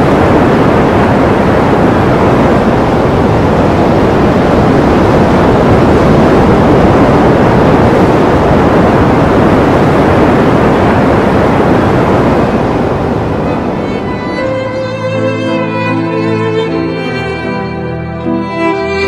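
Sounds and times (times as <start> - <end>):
loud rushing noise: 0.0 - 19.0.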